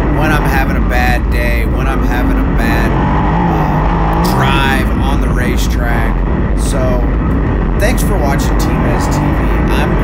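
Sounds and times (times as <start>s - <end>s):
racing car engine: 0.0s - 10.0s.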